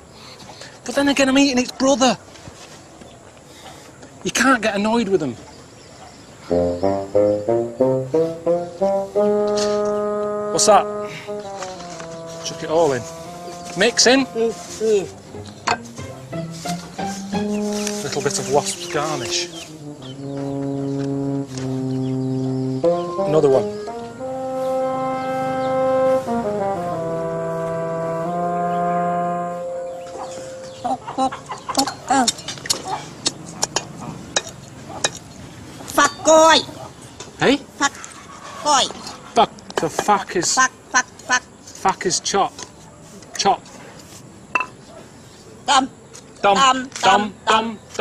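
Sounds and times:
low brass detached notes: 0:06.5 - 0:31.4.

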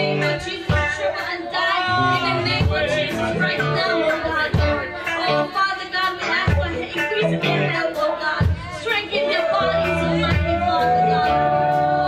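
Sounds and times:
backing singers: 0:00.0 - 0:12.0
band with drums and guitar: 0:00.0 - 0:12.0
woman singing lead: 0:00.0 - 0:12.0.

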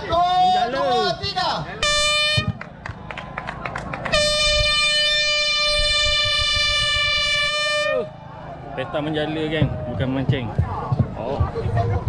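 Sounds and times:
air horn blast: 0:01.8 - 0:02.6, 0:04.1 - 0:08.1.

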